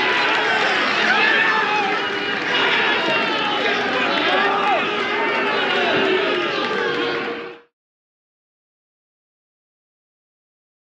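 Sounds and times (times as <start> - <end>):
crowd shouting and cheering: 0.0 - 7.7.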